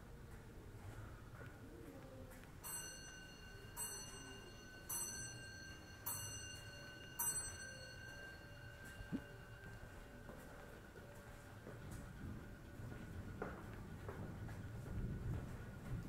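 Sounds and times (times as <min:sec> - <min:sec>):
metal bell chime ringing: 0:02.6 - 0:09.9.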